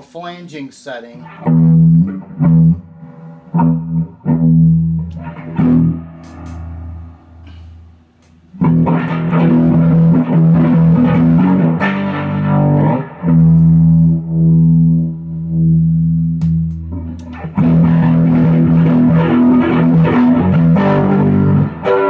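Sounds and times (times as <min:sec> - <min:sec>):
flanged electric guitar strumming: 0:01.2 - 0:22.0.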